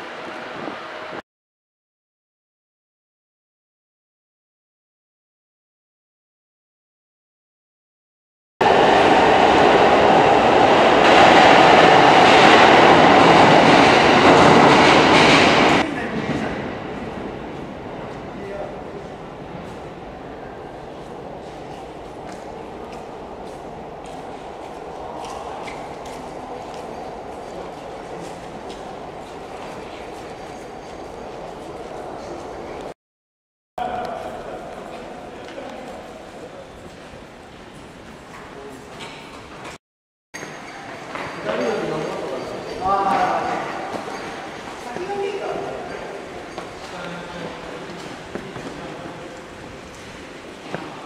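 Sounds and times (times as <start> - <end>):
train rumbling and rattling: 8.6 - 32.9.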